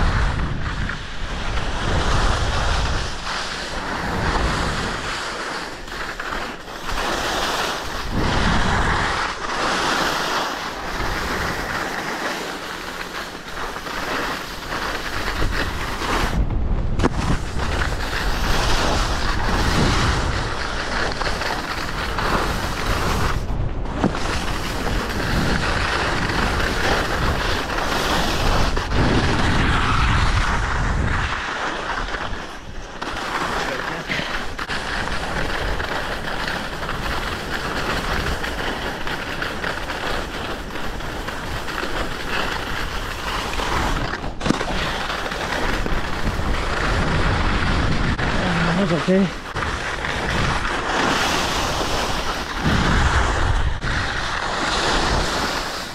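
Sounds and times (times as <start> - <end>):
wind buffeting microphone: 0.0 - 5.1, 7.7 - 10.1, 13.7 - 55.9
skis sliding over snow: 0.0 - 55.9.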